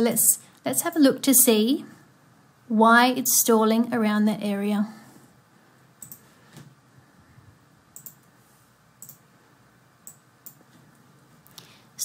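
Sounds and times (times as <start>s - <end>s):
low room hiss: 0.0s - 12.0s
computer mouse clicking: 6.0s - 6.3s, 7.9s - 8.3s, 9.0s - 9.3s, 10.0s - 10.7s.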